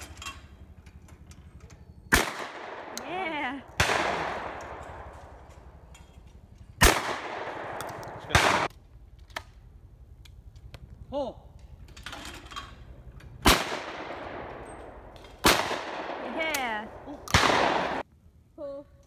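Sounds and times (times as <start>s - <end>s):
shotgun shots with echo: 2.1s - 3.0s, 3.8s - 5.1s, 6.8s - 8.7s, 13.4s - 16.4s, 17.3s - 18.0s.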